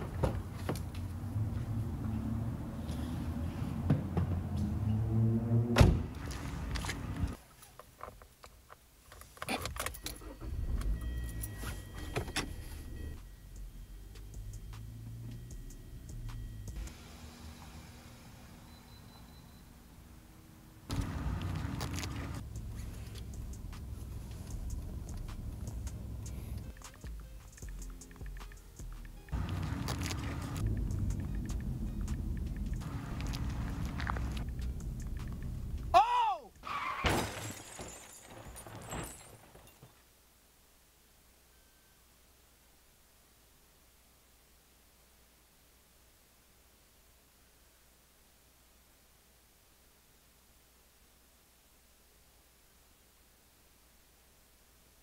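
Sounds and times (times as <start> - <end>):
car engine starting and running: 0.9 - 7.4, 9.8 - 35.9
road rumble inside a moving car: 20.8 - 27.8, 29.3 - 36.0
tyre squeal: 36.6 - 37.2
car crash with breaking glass: 36.6 - 39.9.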